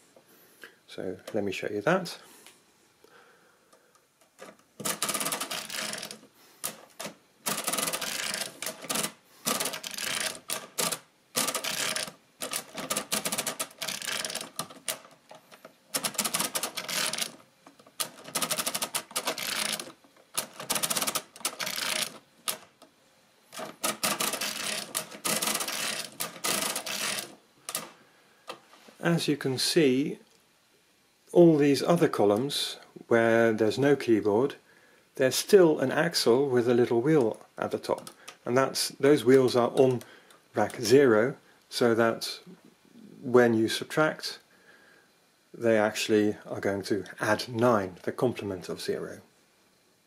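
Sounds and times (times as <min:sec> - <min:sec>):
mechanical calculator clattering: 0:04.4 - 0:22.8, 0:23.5 - 0:27.9.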